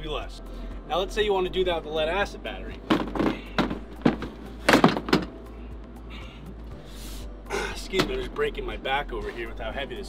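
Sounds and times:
heavy battery knocks and thunks: 0:02.8 - 0:05.4.

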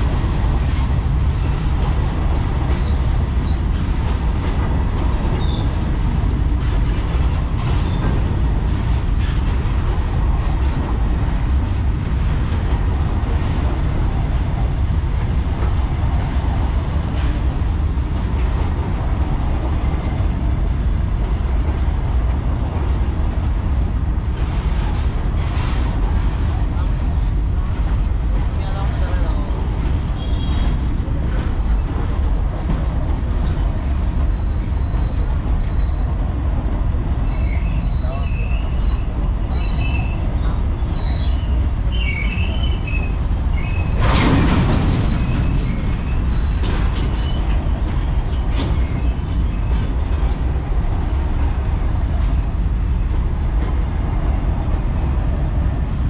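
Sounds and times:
clicks of wheels on rails: 0:00.0 - 0:55.9
freight train wheels rumbling: 0:00.0 - 0:56.0
high-pitched wheel squeals: 0:02.7 - 0:03.8, 0:34.3 - 0:36.1, 0:37.2 - 0:40.2.

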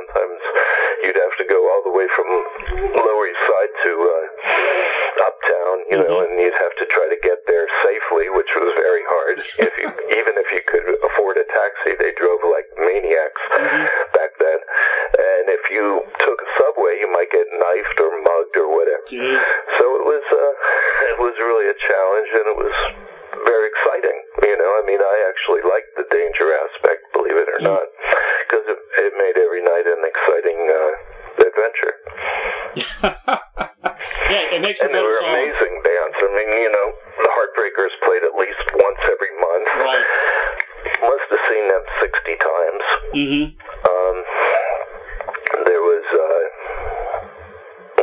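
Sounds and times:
person talking over telephone line: 0:00.0 - 0:32.0, 0:34.0 - 0:47.3.

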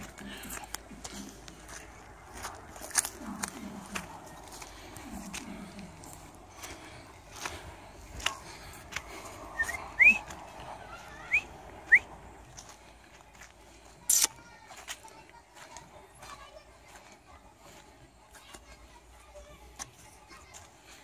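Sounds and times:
footsteps on dry ground: 0:00.0 - 0:21.0.

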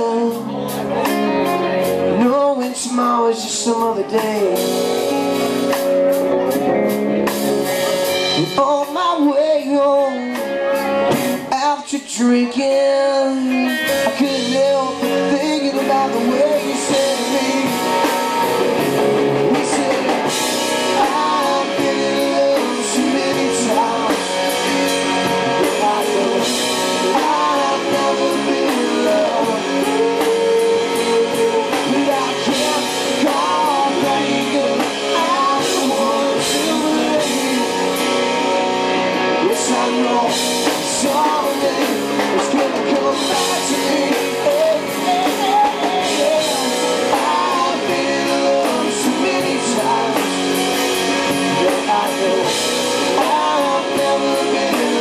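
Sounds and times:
drum kit with cymbals: 0:00.0 - 0:55.0
electric guitars: 0:00.0 - 0:55.0
person singing: 0:00.0 - 0:55.0.

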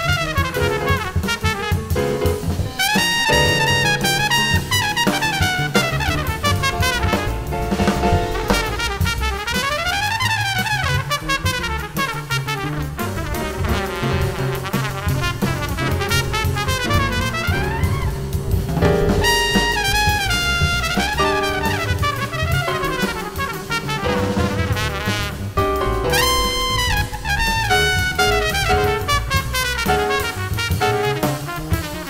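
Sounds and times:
bass line: 0:00.0 - 0:32.0
drum kit: 0:00.0 - 0:32.0
trumpet playing quick runs: 0:00.0 - 0:32.0.

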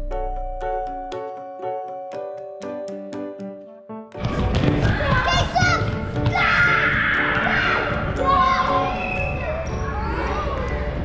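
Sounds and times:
music: 0:00.0 - 0:11.0
feet and ball thudding on floor: 0:04.2 - 0:06.4
children shouting and squealing: 0:05.0 - 0:11.0.

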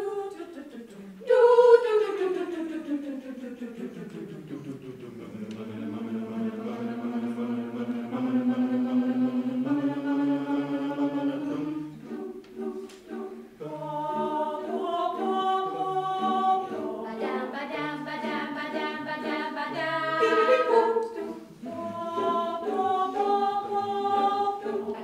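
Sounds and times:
choir singing a cappella: 0:00.0 - 0:25.0.

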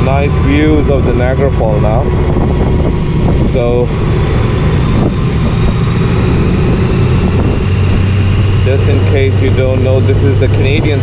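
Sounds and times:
motorcycle engine running: 0:00.0 - 0:11.0
wind and road noise: 0:00.0 - 0:11.0.

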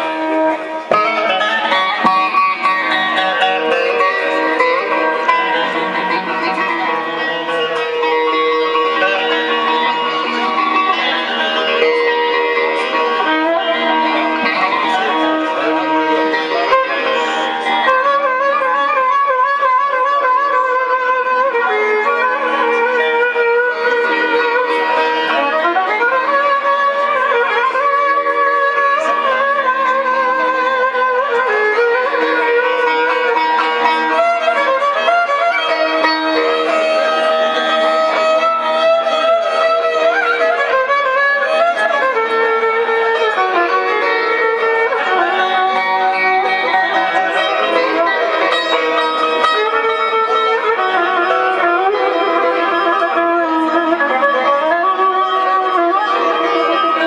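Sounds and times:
droning accompaniment: 0:00.0 - 0:57.0
plucked lute: 0:00.0 - 0:57.0
violin melody sliding in pitch: 0:00.0 - 0:57.0.

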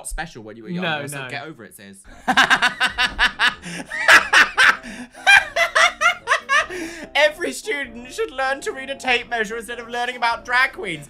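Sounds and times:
man and woman laughing: 0:02.1 - 0:07.2.

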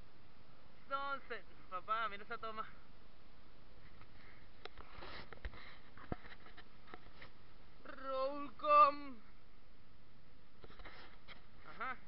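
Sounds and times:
faint steady background noise: 0:00.0 - 0:12.0.

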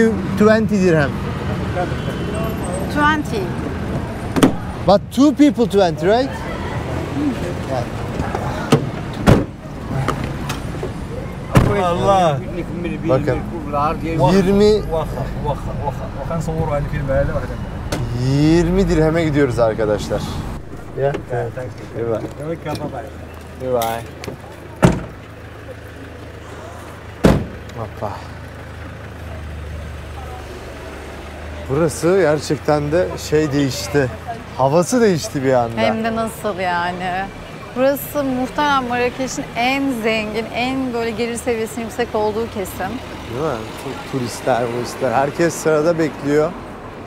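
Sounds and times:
car engine idling: 0:00.0 - 0:47.0
car door shutting: 0:03.9 - 0:04.7, 0:08.2 - 0:11.8, 0:20.6 - 0:23.3, 0:23.9 - 0:25.3, 0:27.2 - 0:27.7.

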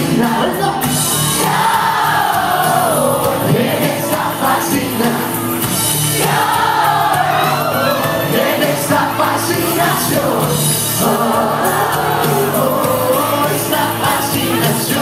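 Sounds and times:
crowd voices: 0:00.0 - 0:15.0
live band playing a ballad: 0:00.0 - 0:15.0.

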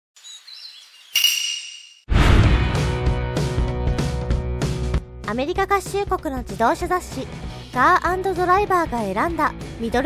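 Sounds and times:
sharp ringing strike: 0:01.2 - 0:02.1.

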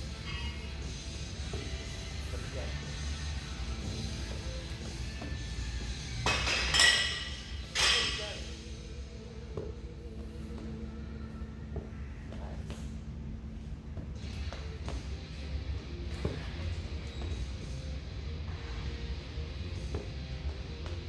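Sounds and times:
gym background music: 0:00.0 - 0:21.0.

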